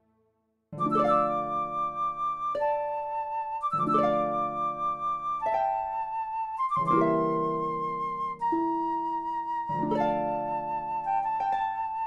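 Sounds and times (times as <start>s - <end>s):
orchestral music with flute and harp: 0.8s - 12.0s.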